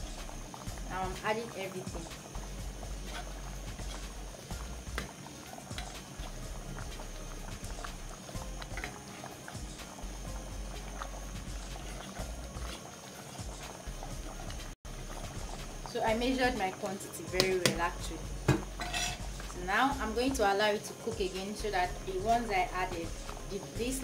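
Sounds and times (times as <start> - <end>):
soup bubbling in a pot: 0.0 - 20.4, 21.2 - 24.0
metal spoon knocking pot: 18.5 - 19.2.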